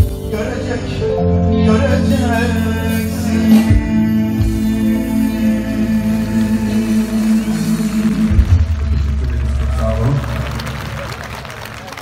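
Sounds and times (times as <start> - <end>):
deep bass note: 1.2 - 11.1.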